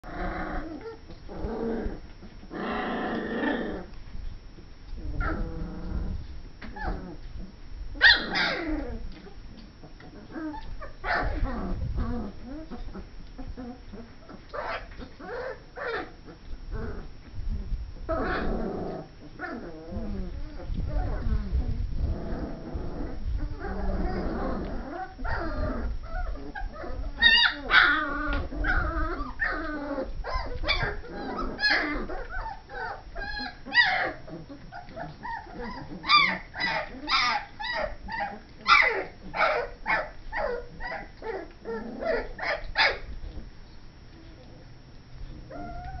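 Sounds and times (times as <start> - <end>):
puppies yipping and whimpering: 6.6 - 7.3, 8.0 - 16.4, 22.4 - 43.1, 45.2 - 46.0.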